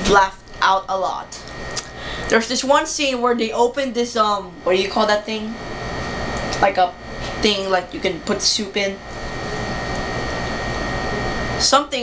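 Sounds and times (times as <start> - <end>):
faint thin whine: 4.6 - 12.0.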